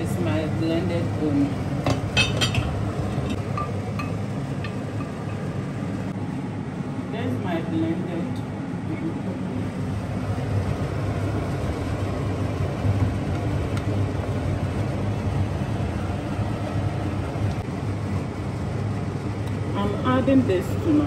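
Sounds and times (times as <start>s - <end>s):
extractor fan humming: 0.0s - 21.0s.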